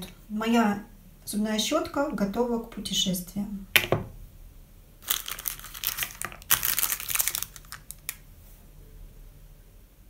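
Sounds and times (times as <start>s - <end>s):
plastic packet crinkling: 5.0s - 8.2s.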